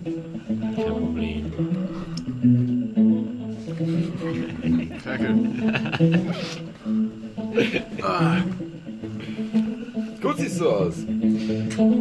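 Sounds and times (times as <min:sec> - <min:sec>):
guitar plucking low notes: 0:00.0 - 0:12.0.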